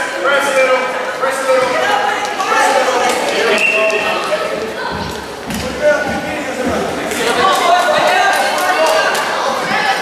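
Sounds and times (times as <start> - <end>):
crowd chattering in echoing hall: 0.0 - 10.0.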